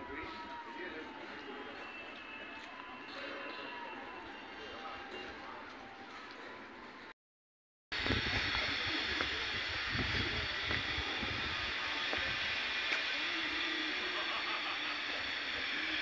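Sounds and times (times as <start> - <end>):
hissing outdoor background noise: 0.0 - 7.1, 8.0 - 16.0.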